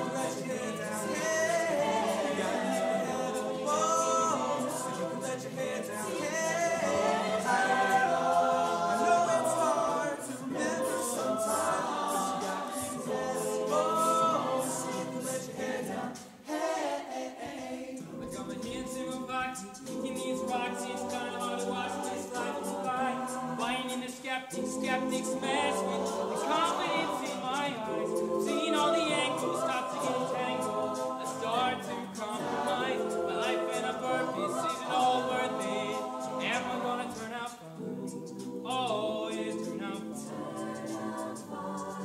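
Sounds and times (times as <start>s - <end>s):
choir singing a cappella: 0.0s - 42.0s.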